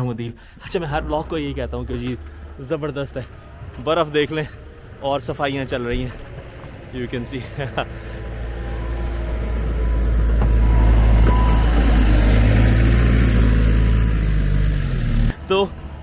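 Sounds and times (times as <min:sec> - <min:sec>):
diesel engine drone: 0:00.0 - 0:16.0.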